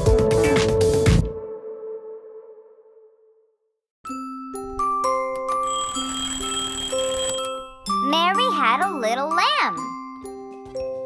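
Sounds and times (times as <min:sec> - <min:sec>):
children's music melody: 0:04.1 - 0:11.0
alarm clock bell ringing: 0:05.0 - 0:09.4.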